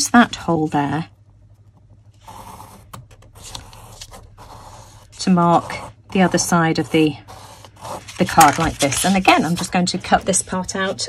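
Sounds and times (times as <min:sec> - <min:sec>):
pencil scratching on card: 0:02.2 - 0:11.0.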